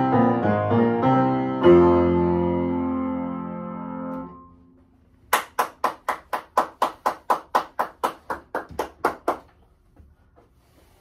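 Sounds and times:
piano chord: 0.0 - 4.9
hand clapping: 5.3 - 9.7.

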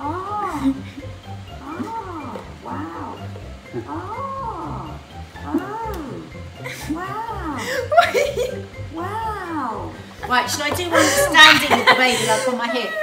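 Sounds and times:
electronic mask roars: 1.6 - 6.3.

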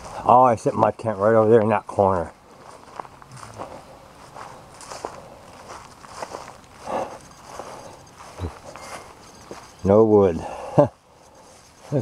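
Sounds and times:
footsteps on grass: 0.0 - 12.0.

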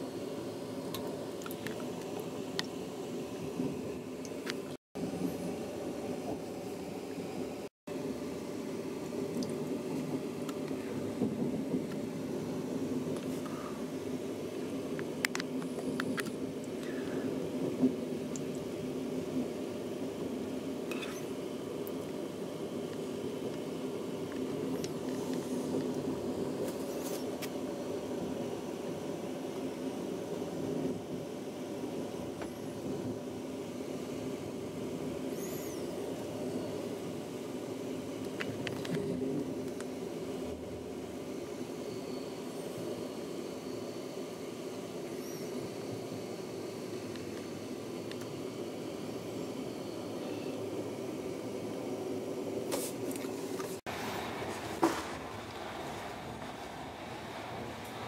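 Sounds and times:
train wheels rumbling on rails: 3.2 - 7.7, 9.0 - 21.1, 52.9 - 58.0.

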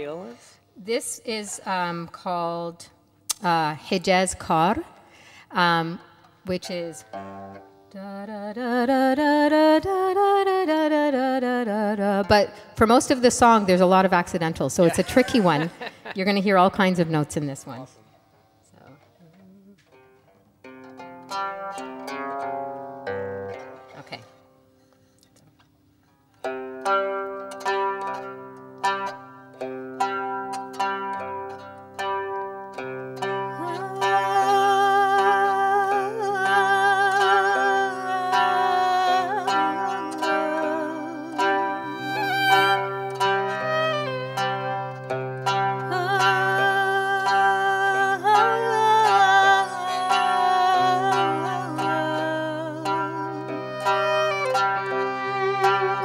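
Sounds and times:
plucked zither notes: 5.6 - 8.1, 11.9 - 56.0
sustained wavering melody: 33.4 - 56.0.

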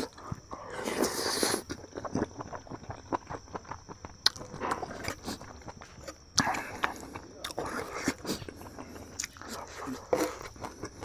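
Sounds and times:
person chewing food: 0.0 - 11.0.

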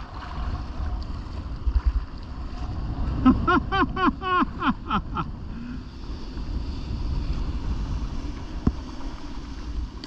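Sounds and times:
waves breaking: 0.0 - 10.0
wind buffeting microphone: 0.0 - 10.0.

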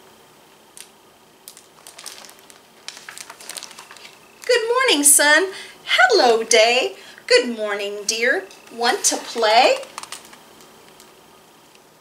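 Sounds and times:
faint paper crackles: 0.8 - 4.6, 8.5 - 11.1
book page turning: 1.5 - 4.6, 8.6 - 11.1.

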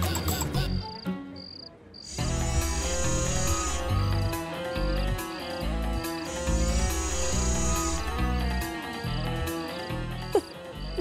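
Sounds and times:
crickets chirping: 1.4 - 8.2
background music with bass line: 2.1 - 11.0.

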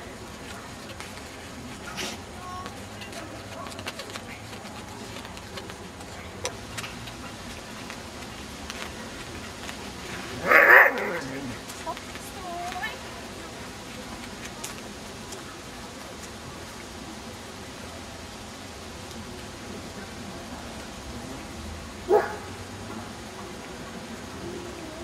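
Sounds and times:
dog barking: 22.1 - 22.5.

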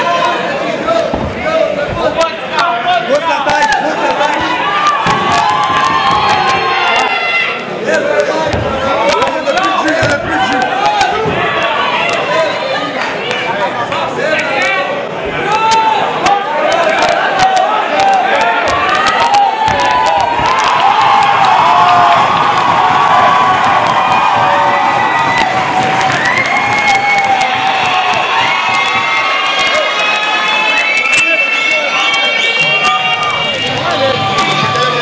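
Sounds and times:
crowd cheering and shouting: 0.0 - 35.0.

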